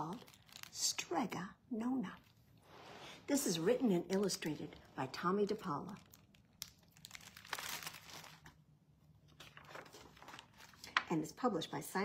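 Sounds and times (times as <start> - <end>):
book pages rustling: 9.2 - 11.1.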